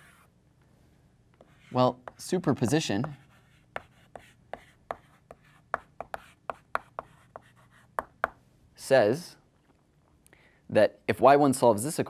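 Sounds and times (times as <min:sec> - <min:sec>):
chalk tapping and scraping on blackboard: 0:00.0 - 0:00.3, 0:01.4 - 0:08.4.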